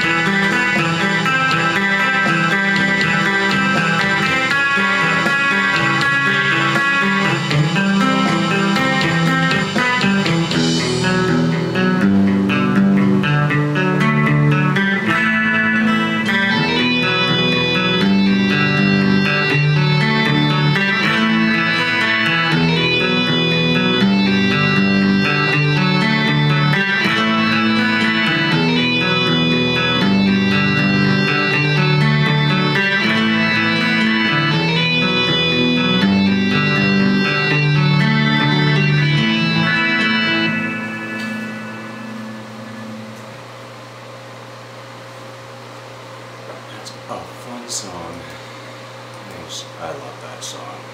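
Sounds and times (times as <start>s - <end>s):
backing track: 0.0s - 44.1s
electric guitar rhythm part: 0.0s - 50.9s.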